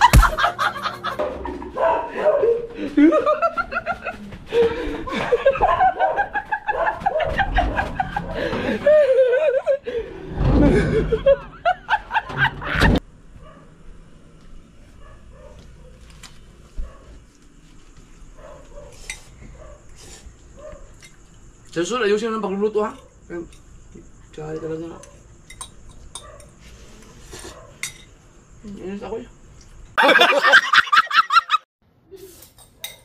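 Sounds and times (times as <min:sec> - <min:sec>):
people laughing: 0:00.0 - 0:13.0, 0:30.0 - 0:31.6.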